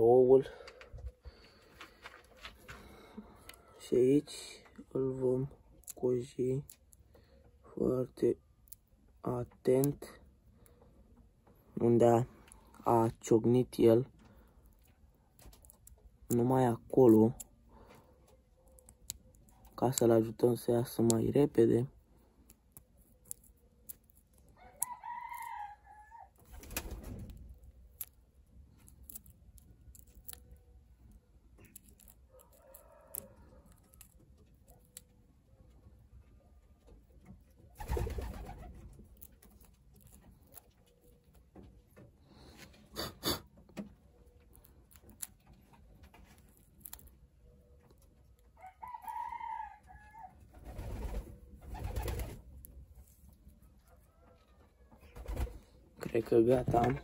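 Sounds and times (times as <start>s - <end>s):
fingers picking at eggshell: 14.1s - 25.7s, 26.3s - 35.2s, 37.2s - 43.1s, 43.7s - 49.2s.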